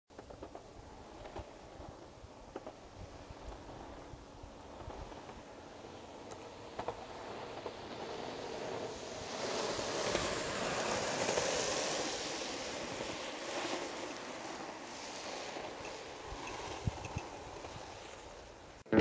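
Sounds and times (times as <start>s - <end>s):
longboard wheels rolling on asphalt: 0.1s - 19.0s.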